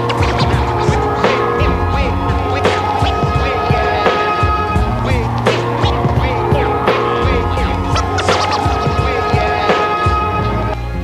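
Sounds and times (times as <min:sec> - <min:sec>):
record scratch sweeps: 0:00.0 - 0:01.4, 0:05.5 - 0:06.1, 0:07.5 - 0:09.7
hip-hop beat: 0:00.0 - 0:10.6.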